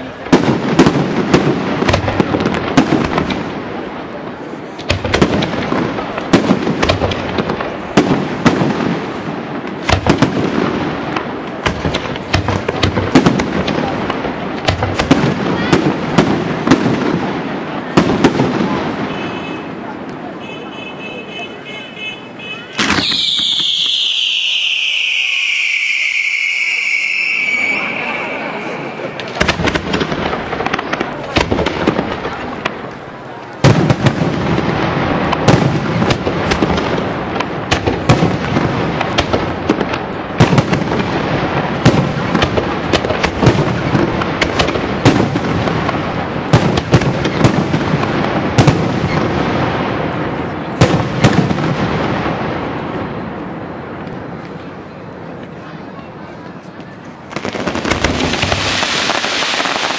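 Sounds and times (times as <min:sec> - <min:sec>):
firework crackling: 0:00.0 - 0:21.8, 0:22.7 - 0:59.9
firework bangs: 0:00.0 - 0:55.8, 0:56.8 - 0:59.9
firework whistle falling: 0:22.7 - 0:29.3.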